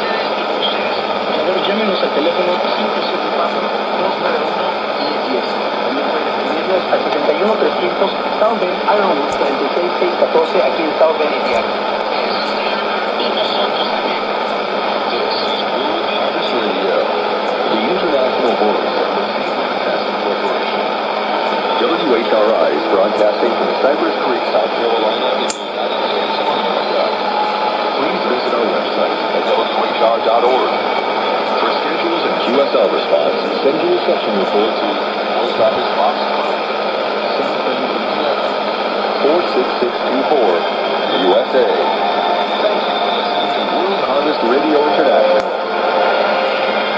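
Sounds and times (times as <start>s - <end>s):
faint noisy radio voice: 0.0s - 46.9s
steady radio hiss: 0.0s - 46.9s.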